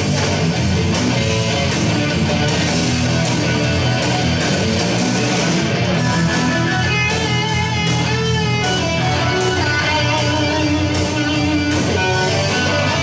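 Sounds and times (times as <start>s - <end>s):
electric guitar solo: 0.0s - 13.0s
low backing music: 0.0s - 13.0s.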